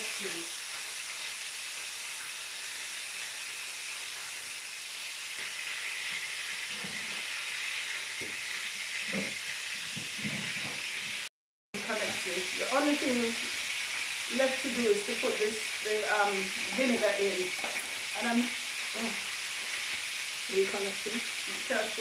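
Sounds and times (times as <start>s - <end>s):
fish sizzling in hot oil: 0.0s - 22.0s.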